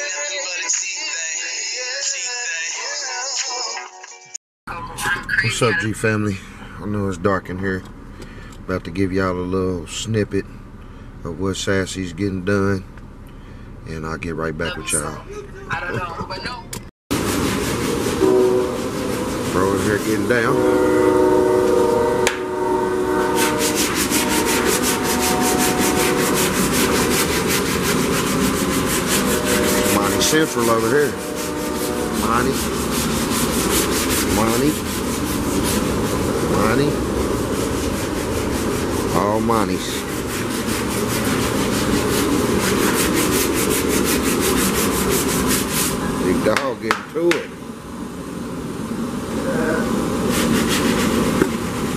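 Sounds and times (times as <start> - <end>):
power sander sanding: 23.1 - 46.0.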